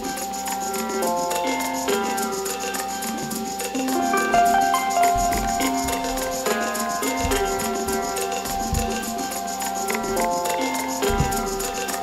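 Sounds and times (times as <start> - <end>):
high ticking beat: 0.0 - 12.0
held synth chords: 2.2 - 11.9.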